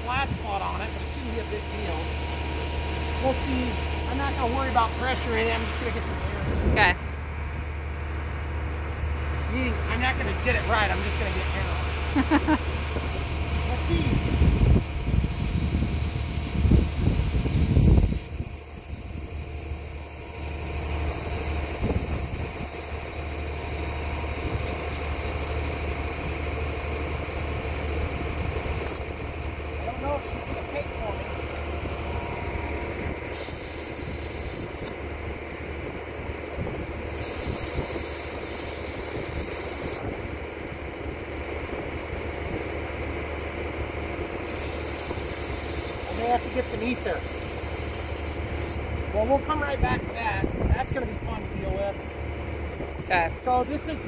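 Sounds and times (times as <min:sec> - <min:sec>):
steady low hum: 0:00.0 - 0:54.0
compressed air hissing: 0:15.2 - 0:29.1, 0:33.1 - 0:35.0, 0:37.0 - 0:40.1, 0:44.4 - 0:48.8.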